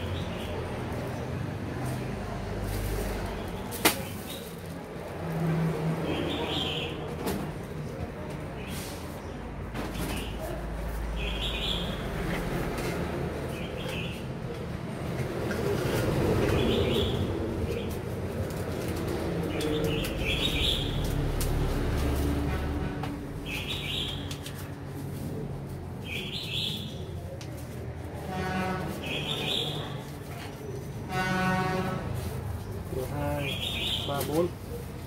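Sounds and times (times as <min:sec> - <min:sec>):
recorded bird calls through loudspeaker: 0:26.1 - 0:27.0, 0:29.0 - 0:30.0, 0:33.4 - 0:34.5.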